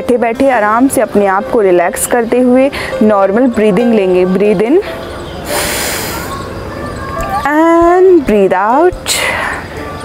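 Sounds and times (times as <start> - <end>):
woman breathing in deeply: 2.7 - 3.0, 5.4 - 6.3.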